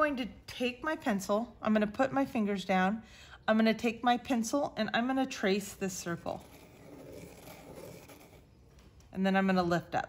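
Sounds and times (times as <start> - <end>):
pencil scratching on paper: 6.0 - 8.5.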